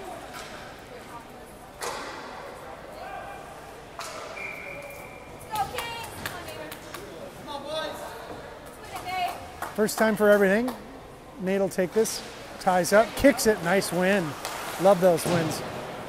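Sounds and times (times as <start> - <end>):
voices chattering in arena: 0.0 - 16.0.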